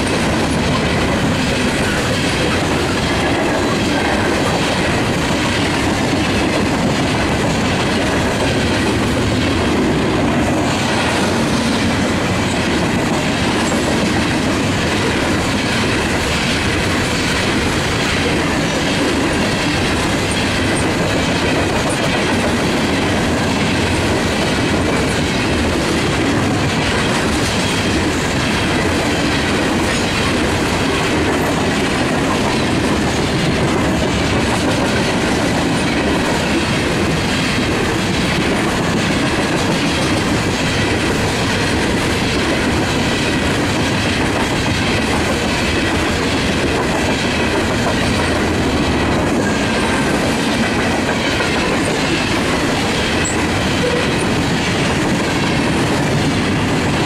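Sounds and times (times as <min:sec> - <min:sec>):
freight train rumble: 0:00.0 - 0:57.0
train wheels clickety-clack: 0:00.0 - 0:57.0.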